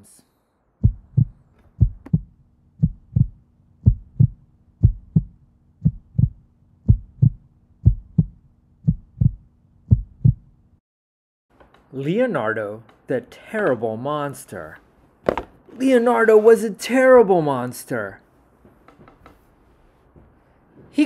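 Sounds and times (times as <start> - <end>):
low steady hum: 0.4 - 10.8
heartbeat thumps: 0.8 - 10.6.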